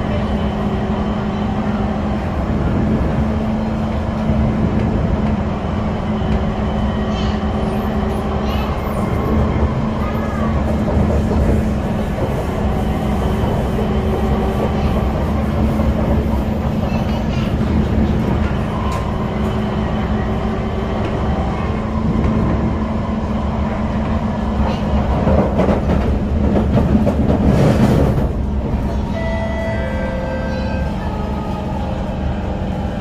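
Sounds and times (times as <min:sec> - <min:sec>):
train drive hum: 0:00.0 - 0:33.0
train wheels rumbling on rail: 0:00.0 - 0:33.0.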